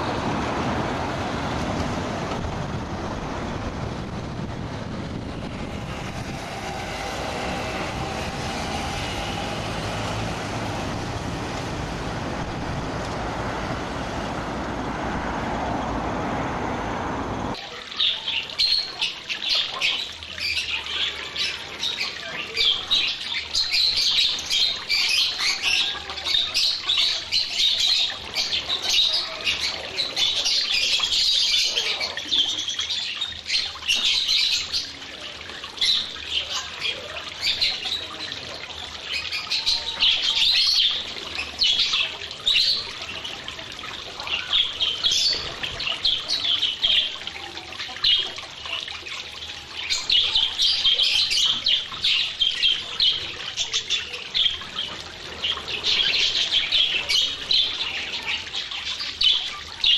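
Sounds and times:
flock of budgerigars chattering: 49.8s - 59.9s.

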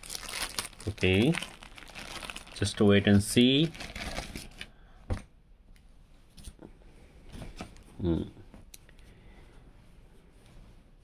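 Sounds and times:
t-shirt and plastic packaging rustling: 0.0s - 4.7s.

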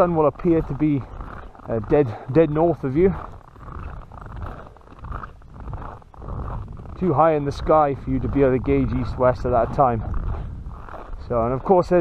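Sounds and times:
footsteps crunching on snow: 0.0s - 12.0s
low rumble: 3.2s - 11.6s.

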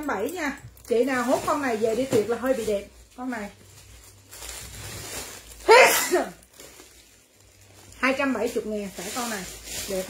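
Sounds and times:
woman sneezing: 5.7s - 6.4s.

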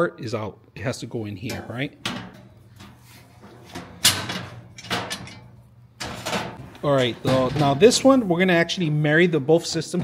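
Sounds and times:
sheet metal clanking and knocking: 1.5s - 8.3s.

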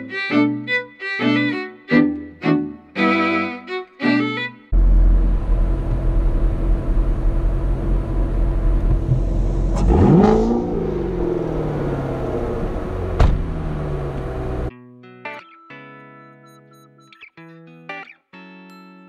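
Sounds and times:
car engine idling and revving: 4.8s - 14.7s.

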